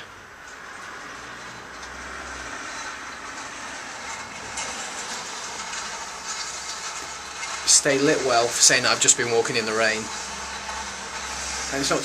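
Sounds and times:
rain hissing: 0.3s - 12.0s.

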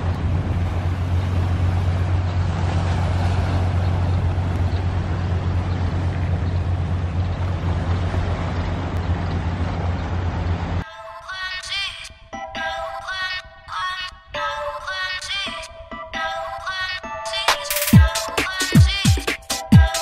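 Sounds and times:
wind rumbling on microphone: 0.0s - 10.8s.

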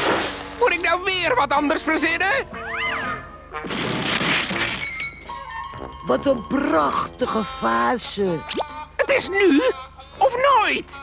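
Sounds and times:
cartoon crash sound effect: 2.7s - 5.4s.

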